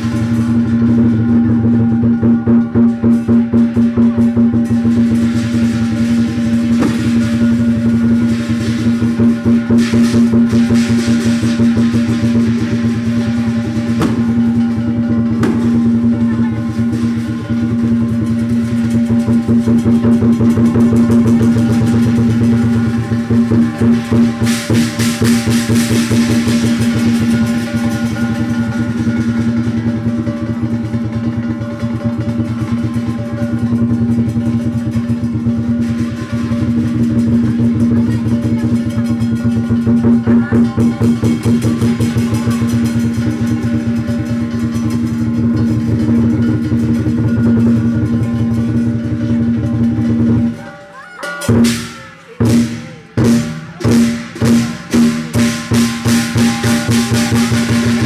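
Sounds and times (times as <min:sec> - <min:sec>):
cymbals: 0:00.0 - 0:58.0
drum: 0:00.0 - 0:58.0
gong: 0:00.0 - 0:58.0.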